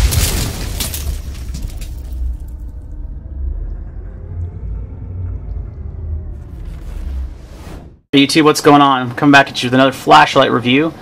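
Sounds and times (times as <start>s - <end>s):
deep low rumble: 0.0s - 8.1s.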